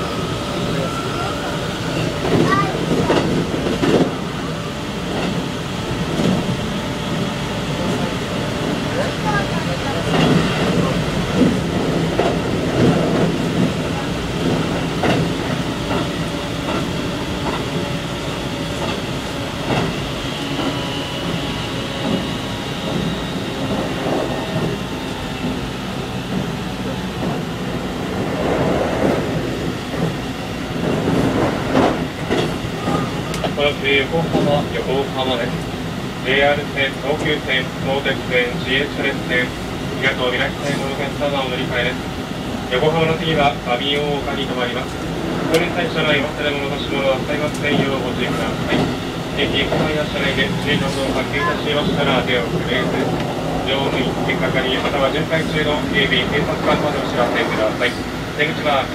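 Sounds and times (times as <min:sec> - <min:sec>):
electric train running hum: 0:00.0 - 0:58.9.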